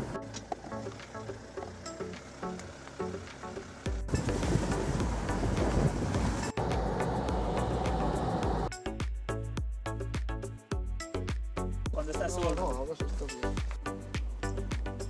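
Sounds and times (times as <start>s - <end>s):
background music with steady beat: 0.0s - 15.0s
loud rushing noise: 4.1s - 8.7s.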